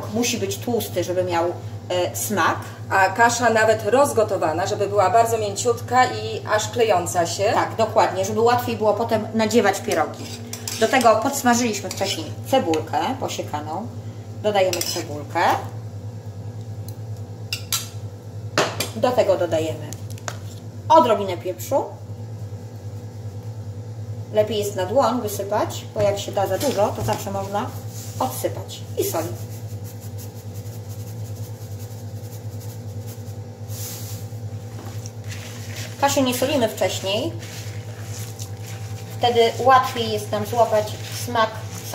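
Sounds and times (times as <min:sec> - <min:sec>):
steady low hum: 0:00.0 - 0:41.9
onion scraped from frying pan: 0:09.9 - 0:12.4, 0:26.6 - 0:41.9
soft rustles of hand mixing: 0:20.0 - 0:20.8, 0:22.3 - 0:23.8, 0:26.3 - 0:41.9.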